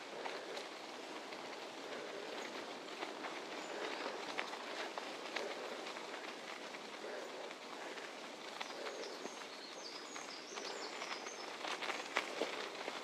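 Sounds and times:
bicycle tyres rolling over gravel: 0.0s - 13.0s.

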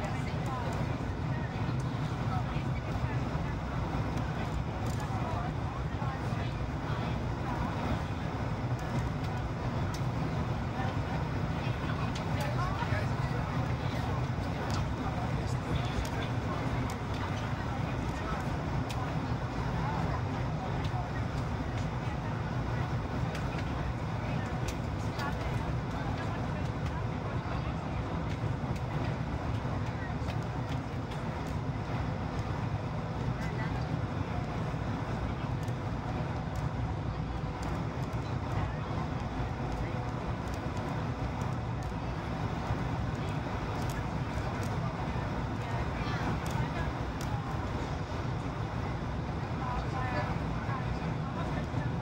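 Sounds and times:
airplane cabin roar: 0.0s - 52.0s.

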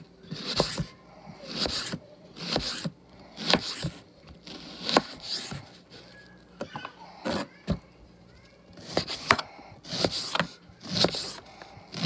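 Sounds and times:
knife chopping on cutting board: 0.3s - 0.9s, 1.5s - 5.6s, 8.8s - 12.0s
knife crunching through onion: 0.3s - 5.6s, 8.8s - 12.0s.

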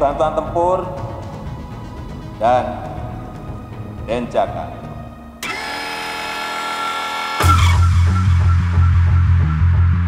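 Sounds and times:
sudden music hit: 7.1s - 9.1s
deep pulsing bass beat: 7.4s - 10.0s.

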